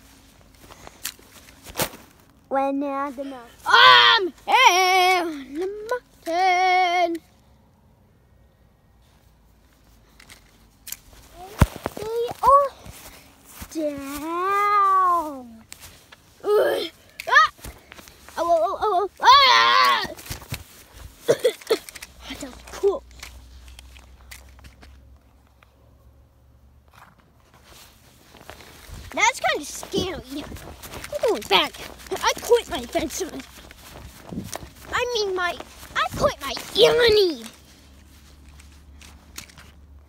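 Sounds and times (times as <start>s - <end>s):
phone rustling through grass: 0.0s - 6.4s, 9.0s - 25.6s, 26.9s - 40.0s.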